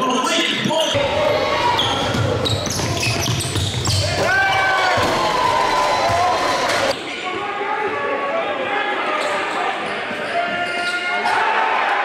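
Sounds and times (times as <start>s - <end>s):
voices echoing in a hall: 0.0s - 12.0s
sneaker squeaks: 1.6s - 5.1s, 9.1s - 11.2s
basketball dribbling on hardwood: 2.0s - 4.3s.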